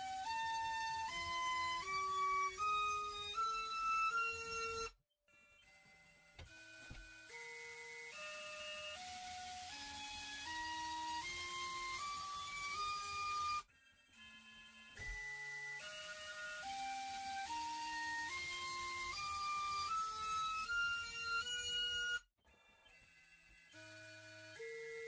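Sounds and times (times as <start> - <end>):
drone motor whine: 0.0 - 25.0.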